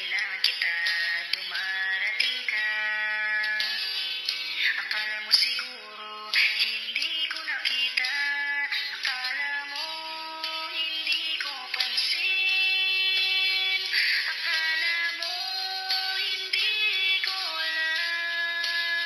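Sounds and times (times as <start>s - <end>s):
autotuned voice singing love song: 0.0s - 19.0s.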